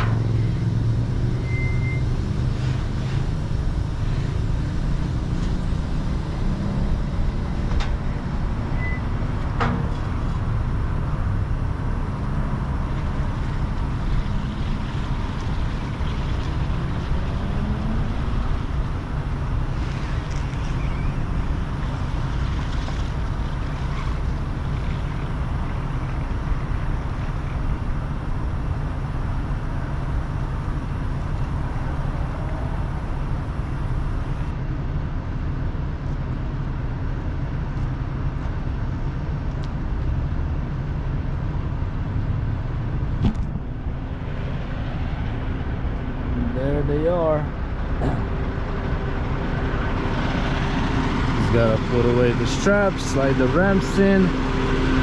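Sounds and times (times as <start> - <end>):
diesel engine idling: 0.0 - 55.0
man's voice: 51.4 - 54.4.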